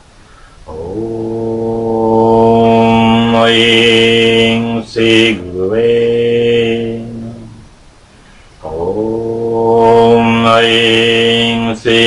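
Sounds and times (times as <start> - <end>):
man chanting: 0.7 - 7.6, 8.6 - 12.0.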